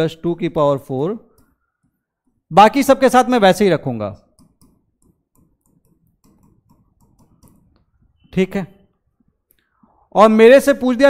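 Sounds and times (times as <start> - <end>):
stylus tapping on glass: 4.4 - 7.9.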